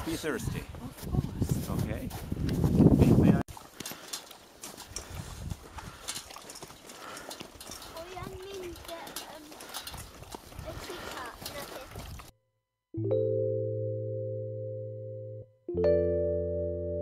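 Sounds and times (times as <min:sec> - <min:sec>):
dogs lapping water: 0:07.9 - 0:12.3.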